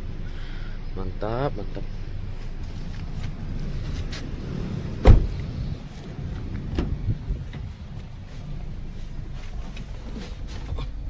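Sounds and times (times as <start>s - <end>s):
low rumbling wind: 1.9s - 11.0s.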